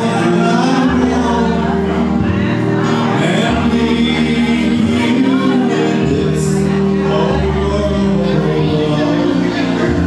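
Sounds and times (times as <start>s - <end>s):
man singing into microphone: 0.0s - 10.0s
sustained keyboard chords: 0.0s - 10.0s.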